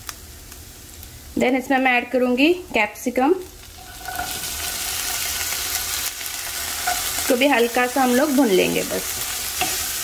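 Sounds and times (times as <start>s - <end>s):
pepper sizzling in hot oil: 0.0s - 10.0s.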